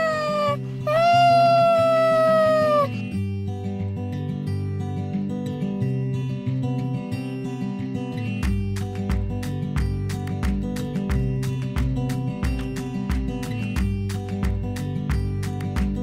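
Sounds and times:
cat meowing: 0:00.0 - 0:03.0
guitar music: 0:00.0 - 0:16.0.

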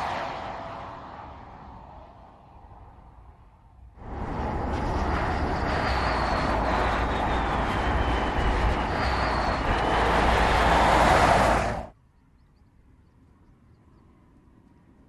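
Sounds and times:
wind rush: 0:00.0 - 0:11.9
faint high whine gliding down: 0:04.0 - 0:11.9
tyre roar on asphalt: 0:04.0 - 0:11.9.

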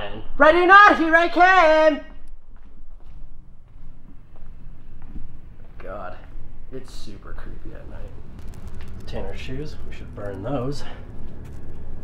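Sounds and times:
faint low hum: 0:02.0 - 0:12.0
footsteps: 0:02.2 - 0:12.0.

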